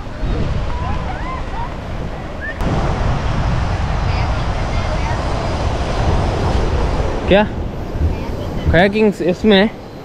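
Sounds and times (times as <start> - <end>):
beach surf: 0.0 - 10.0
wind rumbling on microphone: 0.0 - 10.0.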